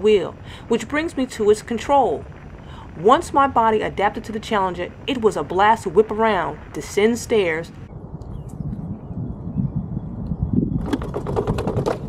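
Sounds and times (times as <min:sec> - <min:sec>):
tyre and wind rumble: 0:00.0 - 0:12.0
rapid rattle of clicks: 0:10.8 - 0:12.0.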